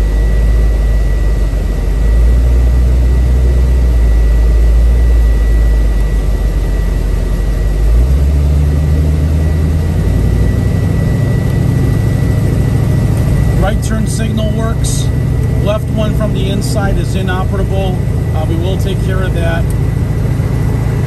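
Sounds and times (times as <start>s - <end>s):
car engine accelerating: 0.0s - 21.0s
car engine idling: 0.0s - 21.0s.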